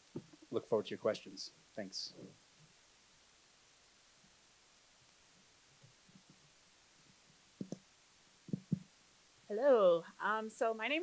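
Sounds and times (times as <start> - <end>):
faint low bumps: 8.4 - 9.0.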